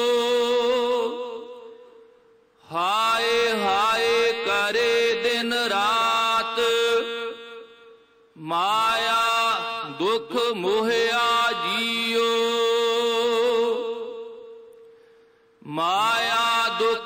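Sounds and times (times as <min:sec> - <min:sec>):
devotional singing: 0:00.0 - 0:02.0, 0:02.7 - 0:07.8, 0:08.4 - 0:14.7, 0:15.6 - 0:17.0.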